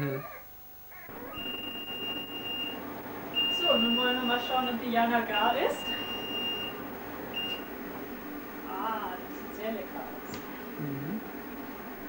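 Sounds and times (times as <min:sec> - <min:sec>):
microwave beeps: 0:00.1 - 0:07.9.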